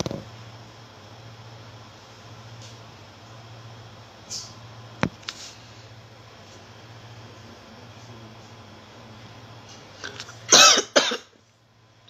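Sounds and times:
woman coughing: 0:10.5 - 0:11.4.

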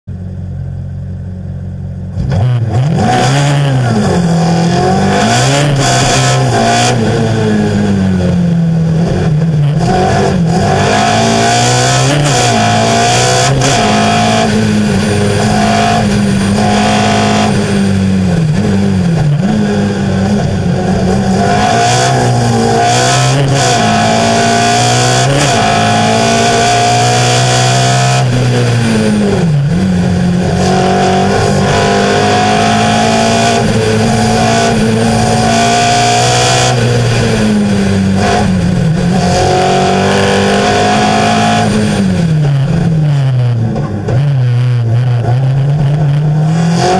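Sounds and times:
race car engine revving: 0:02.1 - 0:46.9.

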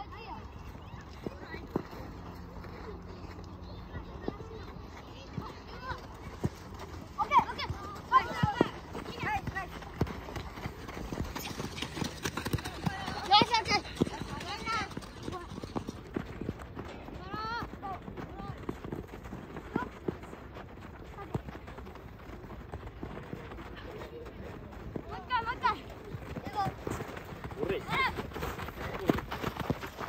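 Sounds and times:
running feet on gravel: 0:00.6 - 0:30.0.

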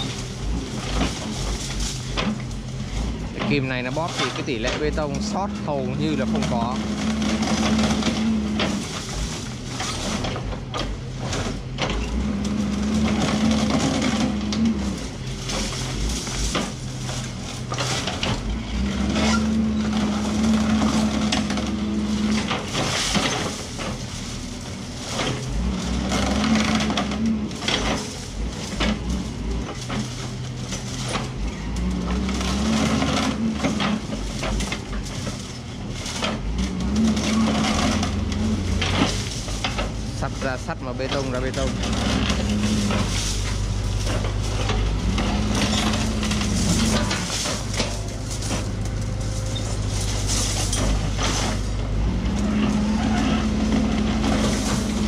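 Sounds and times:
concrete cracking and crunching: 0:00.0 - 0:55.0
diesel engine rising and falling: 0:00.0 - 0:55.0.

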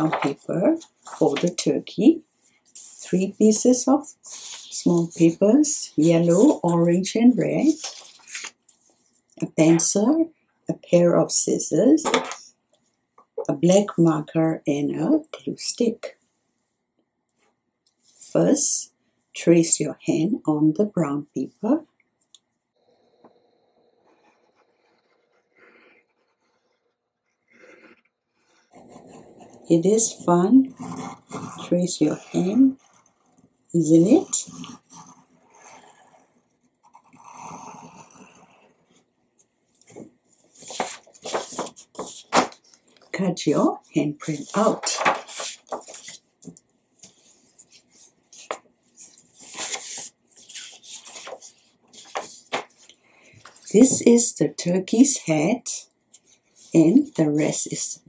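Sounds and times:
paper rustling: 0:00.0 - 0:01.7, 0:04.2 - 0:05.4, 0:07.5 - 0:09.0, 0:39.8 - 0:43.1, 0:44.2 - 0:54.0
pencil scratching on paper: 0:00.0 - 0:09.0, 0:24.0 - 0:39.1, 0:39.8 - 0:42.6, 0:43.6 - 0:46.2, 0:47.0 - 0:52.9.

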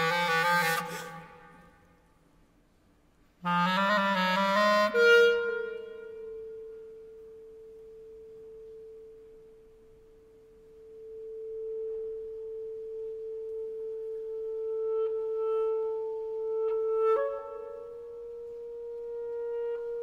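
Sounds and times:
clarinet holding long note: 0:00.0 - 0:02.0, 0:03.4 - 0:09.2, 0:10.8 - 0:20.0.

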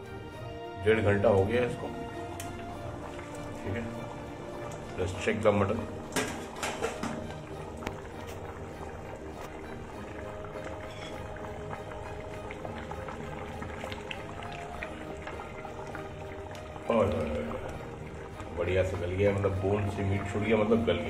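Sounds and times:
faint background music: 0:00.0 - 0:21.0
curry simmering in a pot: 0:01.2 - 0:21.0
metal ladle clicking on pot: 0:06.1 - 0:08.0.

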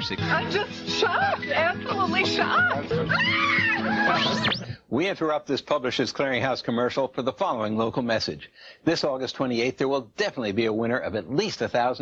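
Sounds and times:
background music: 0:00.0 - 0:04.8
woman screaming with excitement: 0:02.4 - 0:04.6.

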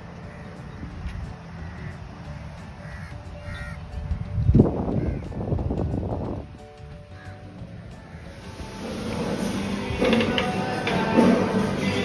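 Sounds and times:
crows cawing: 0:00.2 - 0:00.8, 0:01.5 - 0:04.0, 0:04.9 - 0:05.5, 0:07.1 - 0:08.8.

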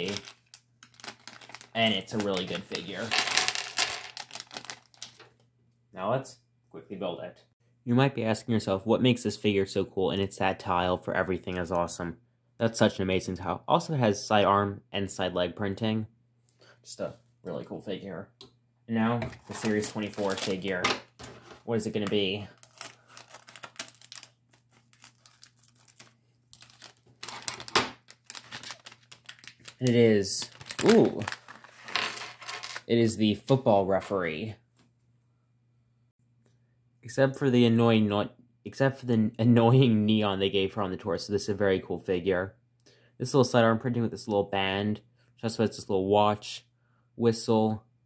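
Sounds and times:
plastic bag crinkling: 0:00.0 - 0:05.3, 0:19.5 - 0:21.4, 0:22.1 - 0:32.8
plastic parts clattering on table: 0:02.3 - 0:05.3.

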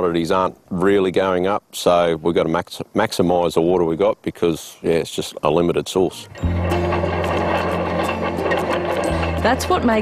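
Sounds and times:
tractor engine humming: 0:06.0 - 0:10.0.

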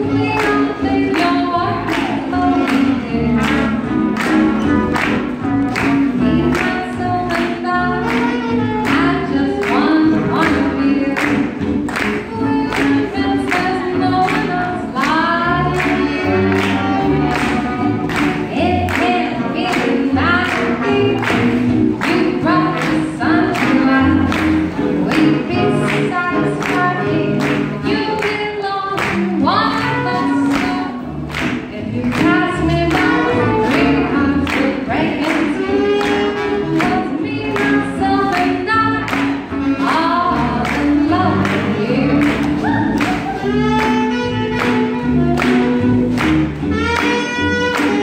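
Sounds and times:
swing jazz band playing: 0:00.0 - 0:48.0.

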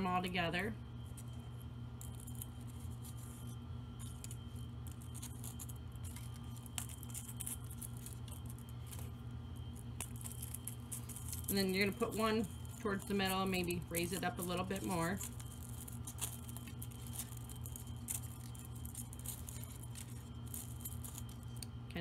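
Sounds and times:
steady low hum: 0:00.0 - 0:22.0
ornaments clinking: 0:01.2 - 0:21.7.

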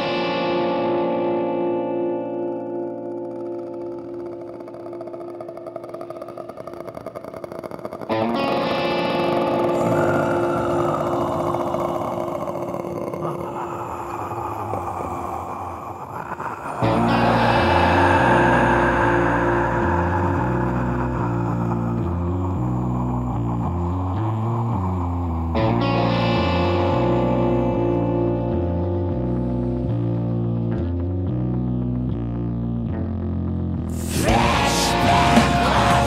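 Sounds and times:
black metal music: 0:00.0 - 0:36.0
distorted electric guitar: 0:00.0 - 0:36.0
low bass notes: 0:16.8 - 0:36.0.

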